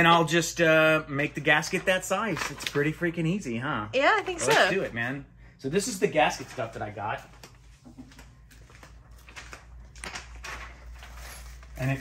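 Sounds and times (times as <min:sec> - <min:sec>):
plastic packaging rustle: 0:06.2 - 0:12.0.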